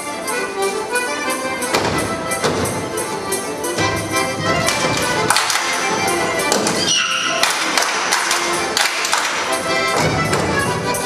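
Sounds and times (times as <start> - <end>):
accordion folk dance tune: 0.0 - 11.0
sharp rhythmic taps: 1.5 - 11.0.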